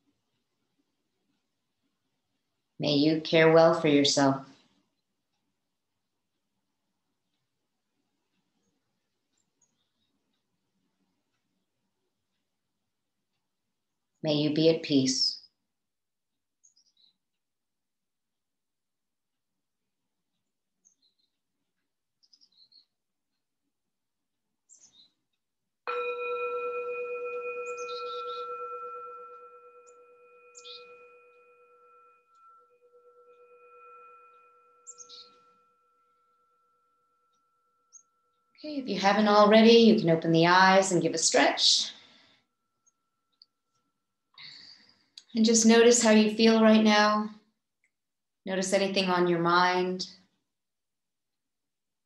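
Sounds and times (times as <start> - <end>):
faint high-pitched chirps: 25.9 - 38.7
singing bowl ringing: 25.9 - 38.7.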